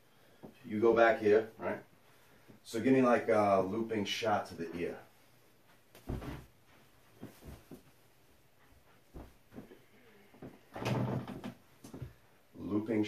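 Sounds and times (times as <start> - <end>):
shuffling feet and clothing: 0.3 - 10.7
arms slapping and bodies knocking: 5.7 - 12.2.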